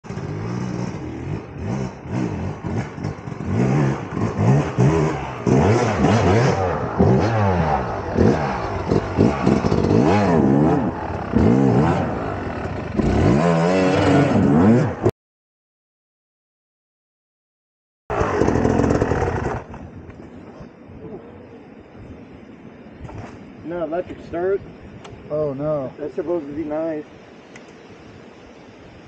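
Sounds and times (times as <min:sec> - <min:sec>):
dirt bike engine revving: 0:00.0 - 0:15.1, 0:18.1 - 0:19.8.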